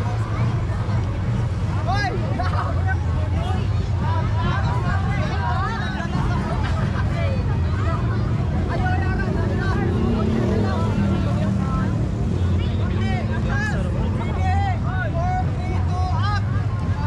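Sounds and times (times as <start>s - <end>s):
crowd talking: 0.0s - 17.0s.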